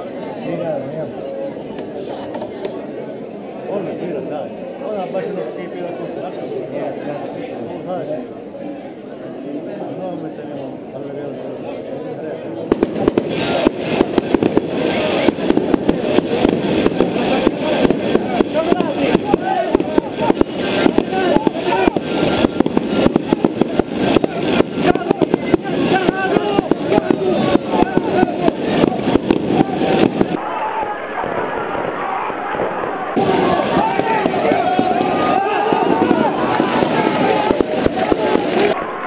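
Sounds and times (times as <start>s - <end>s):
crowd murmur: 0.0s - 39.0s
firecrackers banging: 12.7s - 30.4s, 33.2s - 38.8s.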